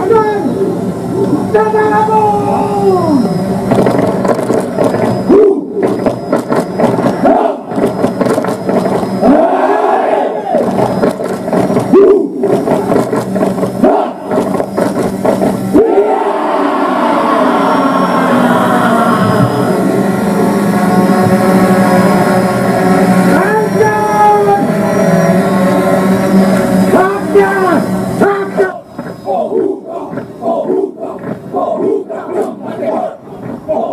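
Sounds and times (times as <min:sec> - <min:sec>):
group chanting and shouting: 0:07.0 - 0:08.0, 0:09.2 - 0:11.1, 0:11.8 - 0:13.0, 0:13.7 - 0:14.9, 0:15.5 - 0:21.4, 0:22.2 - 0:33.9.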